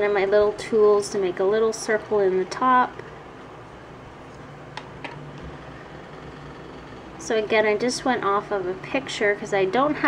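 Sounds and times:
room noise hum and hiss: 0.0s - 10.0s.

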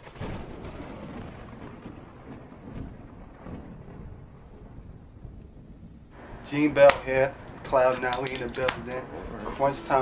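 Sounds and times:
rumbling boom: 0.0s - 7.7s
low rumbling noise: 1.0s - 10.0s.

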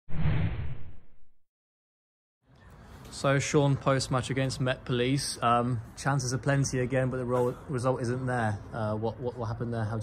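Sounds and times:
whoosh with low impact: 0.1s - 1.3s.

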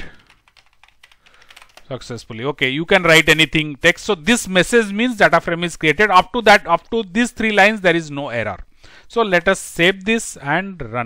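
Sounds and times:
typing on computer keyboard: 0.0s - 1.9s
man talking: 1.9s - 11.0s.

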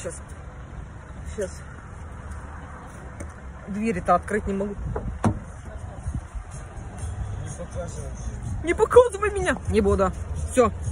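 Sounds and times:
car door knock: 4.9s - 5.5s
car door latch click: 5.0s - 5.5s.

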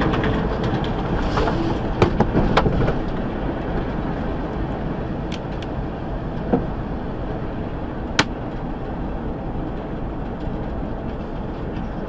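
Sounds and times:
truck cruising rumble: 0.0s - 12.0s.

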